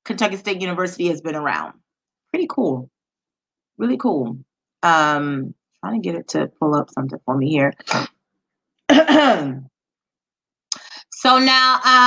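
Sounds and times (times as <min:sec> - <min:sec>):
woman clearing her throat: 0:08.9 - 0:09.7.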